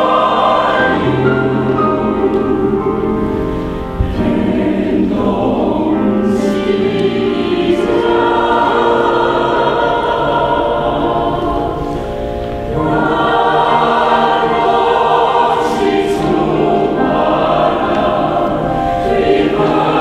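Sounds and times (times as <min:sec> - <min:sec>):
mixed choir singing: 0:00.0 - 0:20.0.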